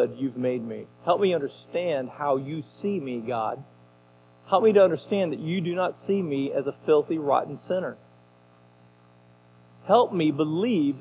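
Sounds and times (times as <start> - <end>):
man talking: 0.0 - 3.7, 4.5 - 8.0, 9.8 - 11.0
faint electrical hum: 0.0 - 11.0.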